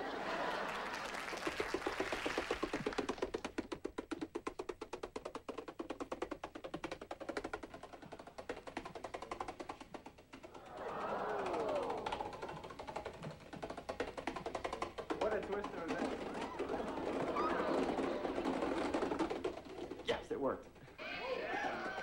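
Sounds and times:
dominoes toppling clatter: 0:11.5 - 0:20.1.

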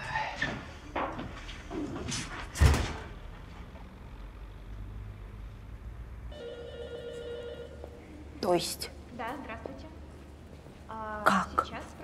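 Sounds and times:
telephone ringing: 0:06.3 - 0:07.9.

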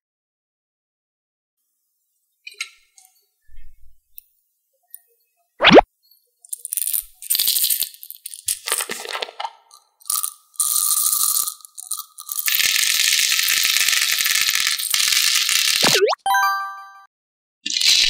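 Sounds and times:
beads pouring and rattling: 0:06.6 - 0:09.2, 0:10.0 - 0:15.8.

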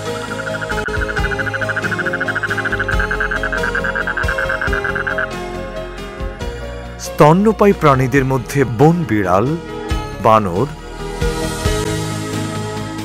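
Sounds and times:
toad trilling: 0:00.0 - 0:05.4
background music: 0:00.0 - 0:13.0.

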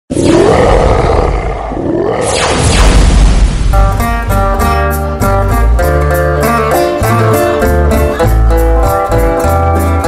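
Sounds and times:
tiger roar: 0:00.1 - 0:02.4.

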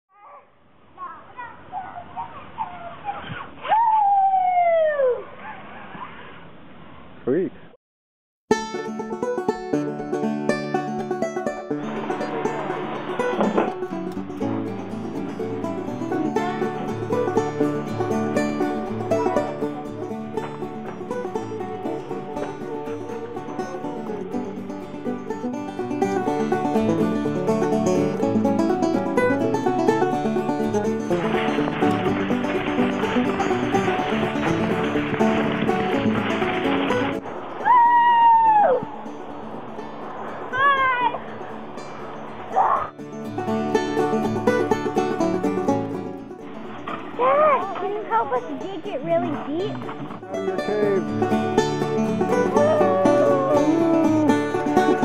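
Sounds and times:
high cry falling in pitch: 0:01.8 - 0:05.3, 0:52.6 - 0:54.5
banjo bluegrass music: 0:08.5 - 0:37.3, 0:39.0 - 0:55.0.

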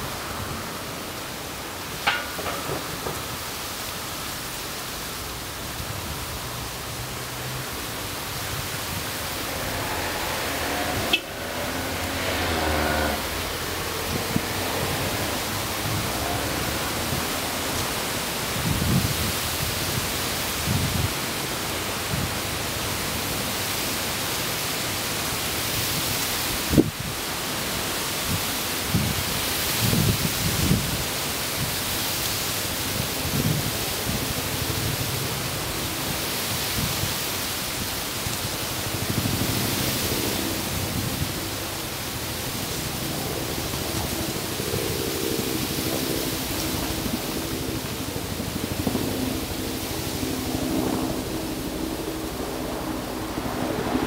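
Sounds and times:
hissing rush of noise: 0:00.0 - 0:54.0.

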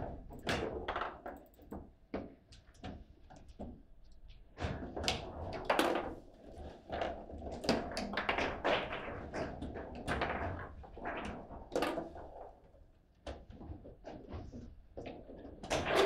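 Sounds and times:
foosball ball and figures clacking: 0:00.0 - 0:03.0, 0:04.6 - 0:06.3, 0:06.9 - 0:12.6, 0:13.3 - 0:16.0.

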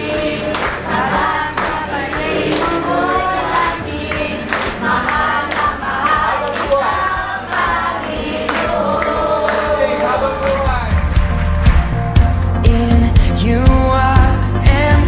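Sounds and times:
group singing worship song: 0:00.0 - 0:10.7
musical accompaniment: 0:00.0 - 0:15.0.

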